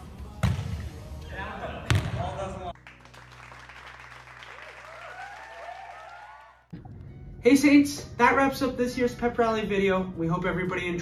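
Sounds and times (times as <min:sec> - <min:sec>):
volleyball being hit: 0:00.4 - 0:00.9, 0:01.9 - 0:02.5.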